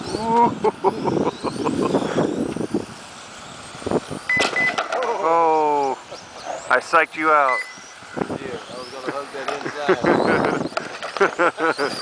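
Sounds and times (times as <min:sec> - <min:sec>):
faint high whine of rc cars: 0:00.0 - 0:12.0
people talking and laughing: 0:00.1 - 0:02.4, 0:04.9 - 0:12.0.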